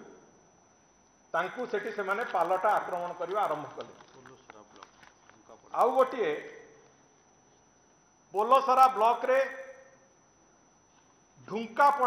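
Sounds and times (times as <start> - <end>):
faint background hum: 0.0 - 12.0
man speaking loudly: 5.6 - 6.6, 8.4 - 9.8, 11.4 - 12.0.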